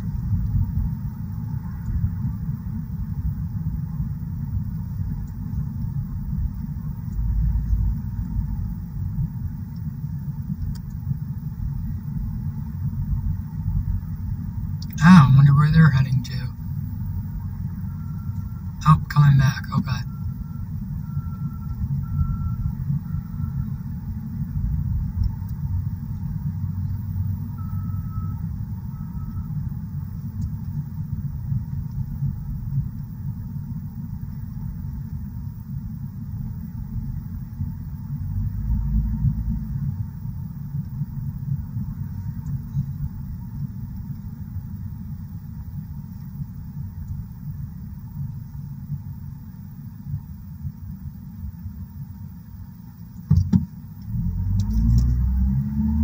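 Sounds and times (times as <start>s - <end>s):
truck road rumble: 0.0s - 56.0s
faint short beeps: 27.6s - 29.6s.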